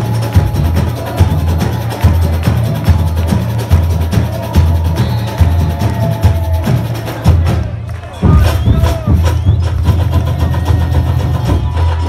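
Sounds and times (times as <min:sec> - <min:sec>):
samba drum section playing: 0:00.0 - 0:12.0.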